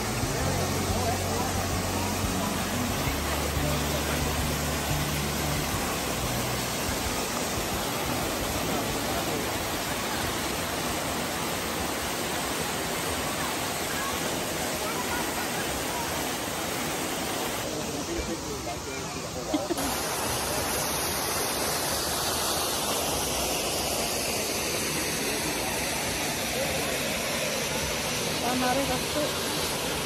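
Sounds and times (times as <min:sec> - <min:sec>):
waterfall pouring into pool: 0:00.0 - 0:30.0.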